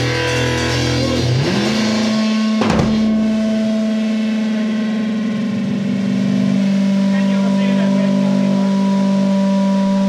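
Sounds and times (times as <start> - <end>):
electric guitar sustained note: 1.0 - 10.0.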